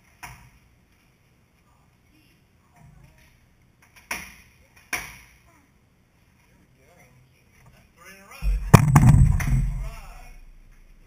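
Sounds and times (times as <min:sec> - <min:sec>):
low rumble with knocks: 0:08.4 - 0:11.0.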